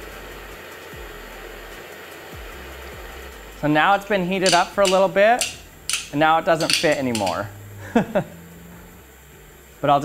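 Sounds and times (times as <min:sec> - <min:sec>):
propane torch hissing: 0:00.0 - 0:10.0.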